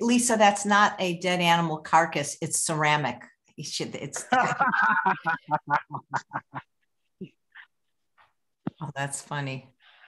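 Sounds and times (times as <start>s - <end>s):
person laughing: 4.2s - 7.6s.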